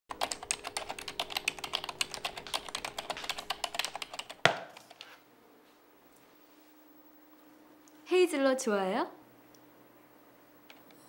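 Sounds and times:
fast typing on keyboard: 0.1s - 4.4s.

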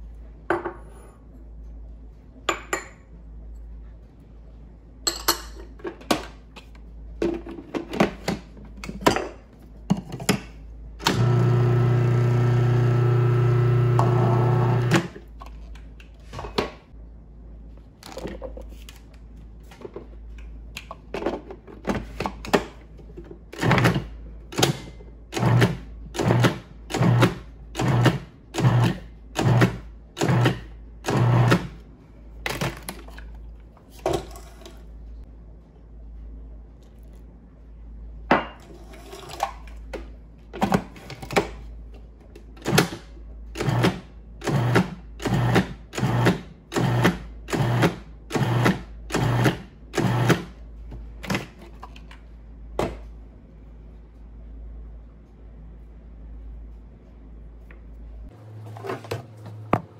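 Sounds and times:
food processor pulsing: 11.0s - 15.2s, 26.2s - 31.6s, 44.5s - 50.3s.

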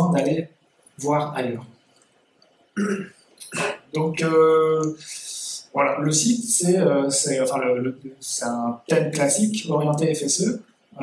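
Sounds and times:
man coughing: 2.8s - 3.9s.

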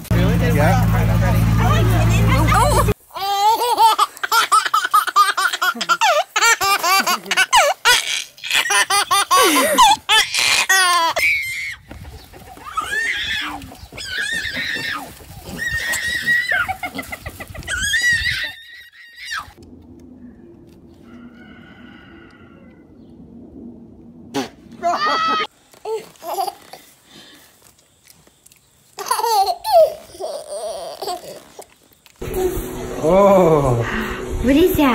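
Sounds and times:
laughter: 8.6s - 10.1s, 16.6s - 17.7s, 24.8s - 25.5s.

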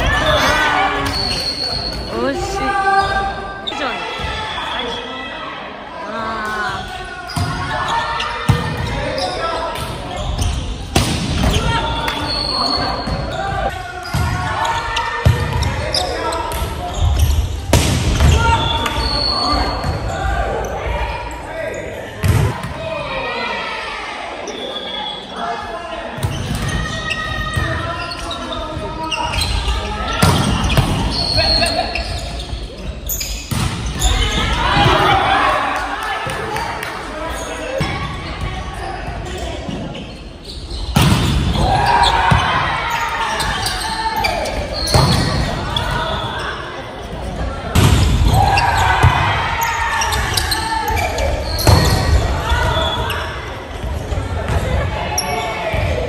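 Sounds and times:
players calling out: 18.2s - 56.0s.

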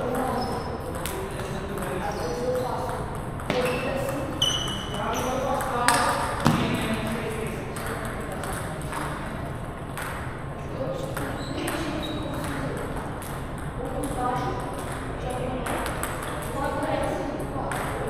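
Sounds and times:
table tennis balls clicking: 0.0s - 18.0s.

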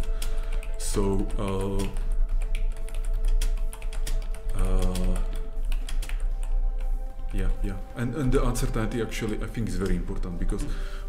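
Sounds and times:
computer keyboard typing: 0.0s - 7.6s.

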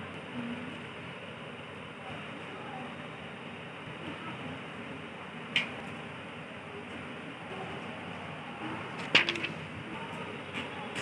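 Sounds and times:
paper crackling: 9.0s - 9.6s.

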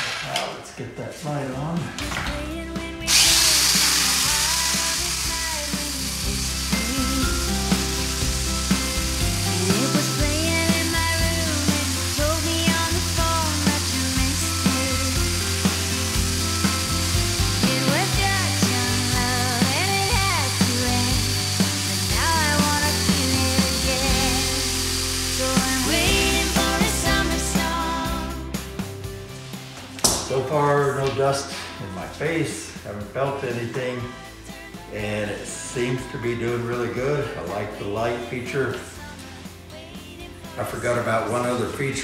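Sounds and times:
music with steady beat: 2.0s - 40.9s
electric sander whirring: 3.1s - 27.3s.

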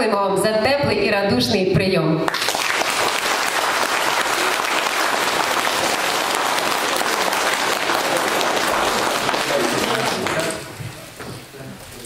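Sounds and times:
crowd applauding: 2.3s - 10.8s.

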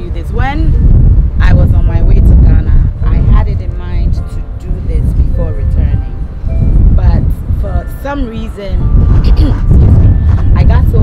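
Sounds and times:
woman speaking: 0.0s - 0.8s, 1.4s - 6.1s, 7.0s - 9.7s, 10.6s - 11.0s
loud low rumble: 8.8s - 11.0s.

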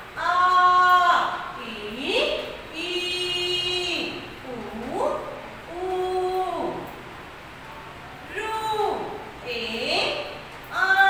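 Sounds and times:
woman chanting a long vowel: 0.2s - 6.9s, 8.3s - 11.0s.

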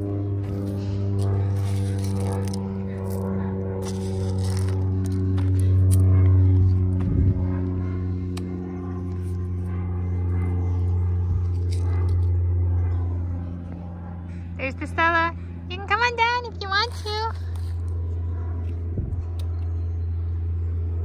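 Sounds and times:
engine hum: 0.0s - 21.0s
light crackles and scrapes: 0.5s - 6.4s, 11.4s - 12.4s.

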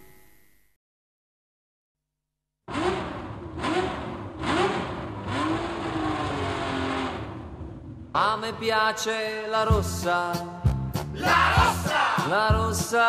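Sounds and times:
race car engine accelerating: 2.7s - 8.0s.

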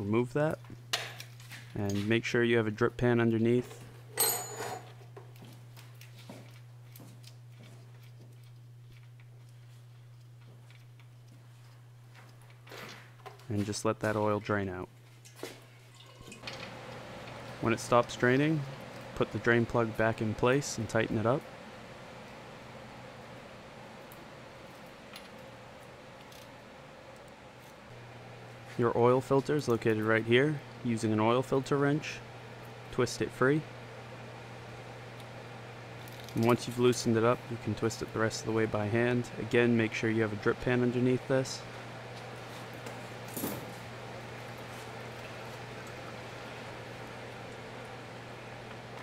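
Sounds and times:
steady low hum: 0.0s - 49.0s.

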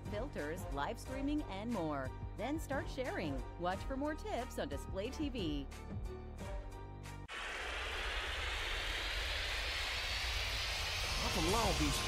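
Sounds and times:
jet-like whoosh: 7.3s - 12.0s.

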